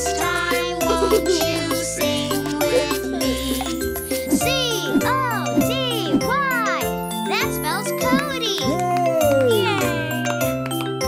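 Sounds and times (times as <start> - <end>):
cartoon children's song: 0.0 - 10.2
child's voice swooping: 4.3 - 6.8, 8.0 - 9.8.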